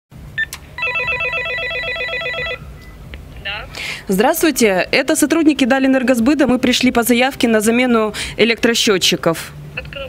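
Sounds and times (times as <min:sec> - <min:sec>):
warbling intercom calling signal: 0:00.8 - 0:02.7.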